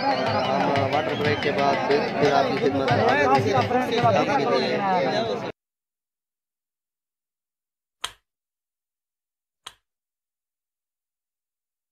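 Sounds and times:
mouse clicks: 0:09.6 - 0:09.8.

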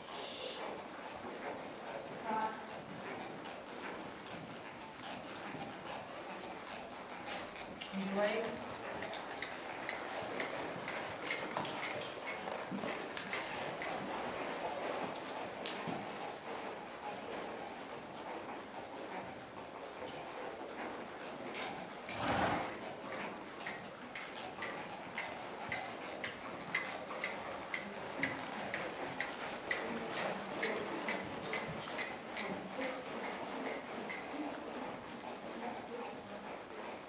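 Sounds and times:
horse moving over arena footing: 0:00.6 - 0:37.0
light ticks: 0:15.6 - 0:15.9.

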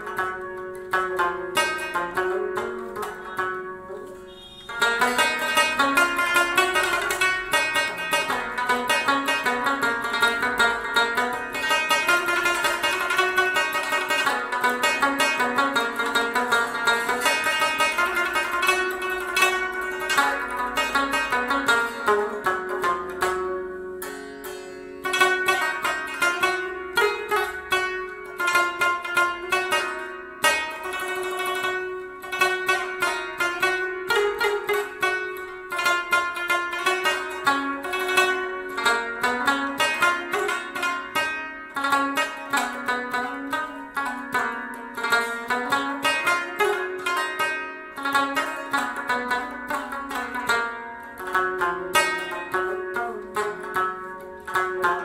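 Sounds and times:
plucked lute melody: 0:00.0 - 0:55.0.

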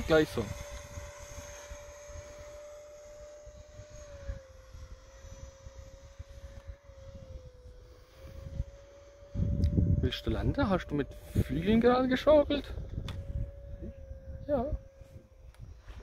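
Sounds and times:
model jet fan whine: 0:00.0 - 0:16.0.

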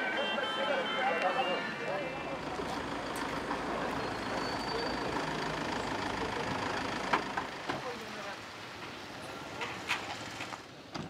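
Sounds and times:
outdoor crowd chatter: 0:00.0 - 0:11.0
vehicle engine rumbling: 0:01.7 - 0:10.9.

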